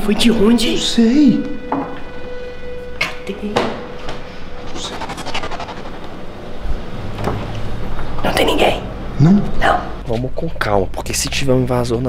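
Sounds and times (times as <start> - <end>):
short rising vocal sound: 4.5 - 7.0.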